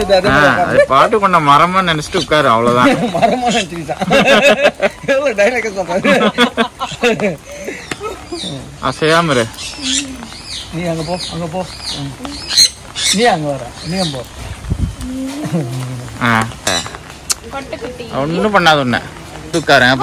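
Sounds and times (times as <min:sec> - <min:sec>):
people's voices: 0:00.0 - 0:20.0
parrots chirping: 0:04.9 - 0:14.5
parrot squawks: 0:12.4 - 0:13.3.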